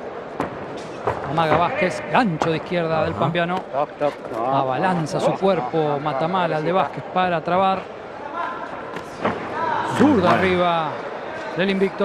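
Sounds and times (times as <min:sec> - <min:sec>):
arena background noise: 0:00.0 - 0:12.0
man's voice: 0:02.8 - 0:03.6, 0:09.9 - 0:10.8.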